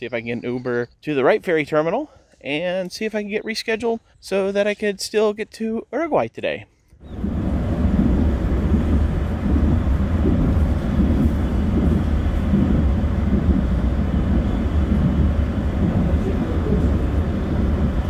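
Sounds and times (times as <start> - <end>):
car cabin road and engine rumble: 7.1 - 18.0.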